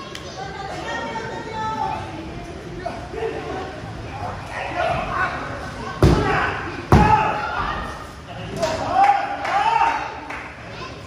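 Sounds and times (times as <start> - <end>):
people shouting: 6.0 - 7.9.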